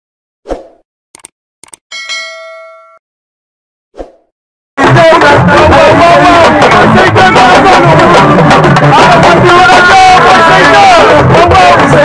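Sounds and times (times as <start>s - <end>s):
quick double clicks: 1.2s - 1.8s
bright bell-like ding: 1.9s - 3.0s.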